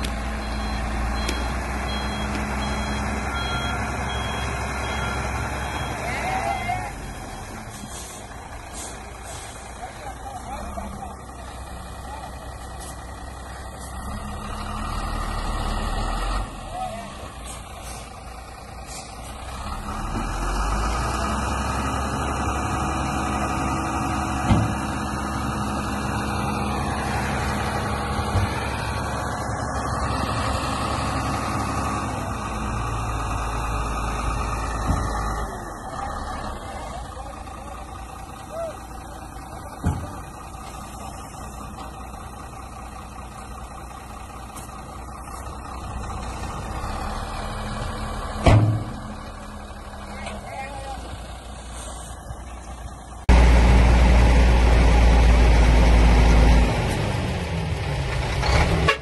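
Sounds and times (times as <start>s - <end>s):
diesel truck engine running: 0.0s - 59.0s.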